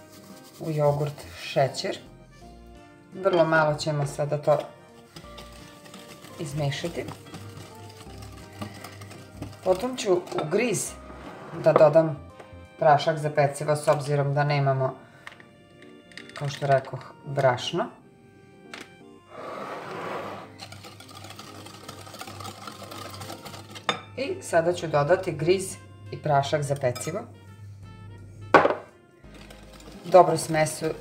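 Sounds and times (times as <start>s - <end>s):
whisk scraping glass bowl: 0.0s - 1.6s, 4.2s - 11.9s, 19.8s - 24.1s, 29.3s - 31.0s
soft background music: 0.0s - 31.0s.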